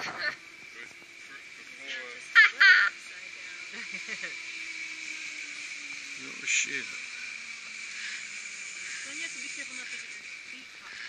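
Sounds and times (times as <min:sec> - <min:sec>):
loud wavering cries: 0:00.0 - 0:11.0
zipline trolley whining on cable: 0:00.0 - 0:11.0.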